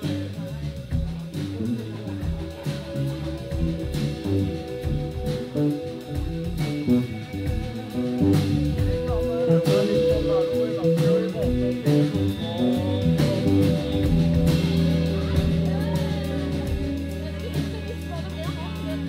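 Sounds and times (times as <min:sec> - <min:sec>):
drum kit: 0:00.0 - 0:19.0
electric bass: 0:00.0 - 0:19.0
electric guitar: 0:00.0 - 0:19.0.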